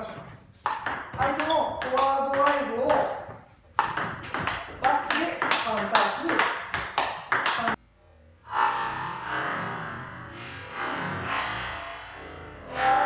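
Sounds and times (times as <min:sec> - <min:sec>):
table tennis ball clicks: 0:00.6 - 0:03.1.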